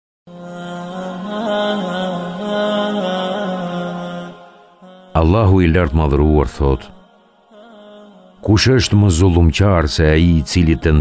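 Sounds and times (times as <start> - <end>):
wordless chanted vocal drone: 0.3 - 11.0.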